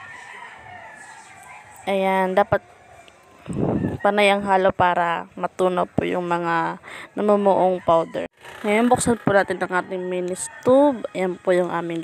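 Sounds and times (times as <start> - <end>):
woman speaking loudly: 1.9 - 2.6, 4.0 - 12.0.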